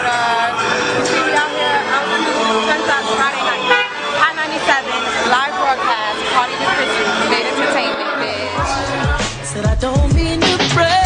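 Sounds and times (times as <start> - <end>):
people talking: 0.0 - 9.4
car horn: 2.6 - 4.9.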